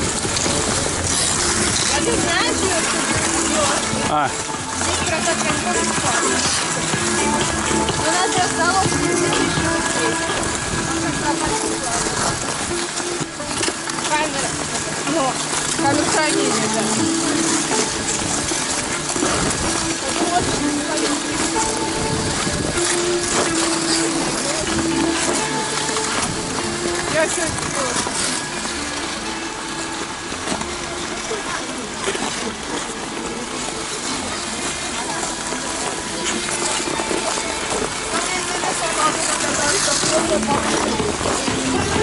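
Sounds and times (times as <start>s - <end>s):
music playing: 0.0s - 42.0s
skate blades scraping ice: 0.0s - 42.0s
voices chattering: 1.8s - 19.1s, 30.6s - 42.0s.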